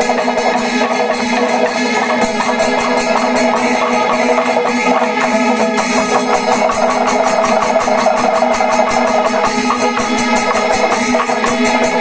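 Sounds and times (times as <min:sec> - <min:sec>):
cymbals: 0:00.0 - 0:12.0
drums in fast rhythm: 0:00.0 - 0:12.0
steady held tones: 0:00.0 - 0:12.0.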